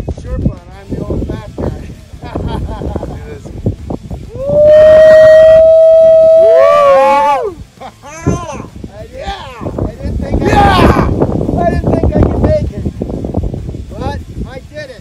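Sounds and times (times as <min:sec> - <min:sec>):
person whooping loudly: 0:04.3 - 0:08.6.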